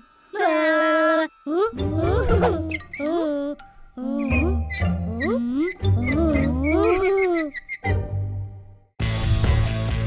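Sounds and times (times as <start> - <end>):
background music with low bass: 9.0 - 10.0.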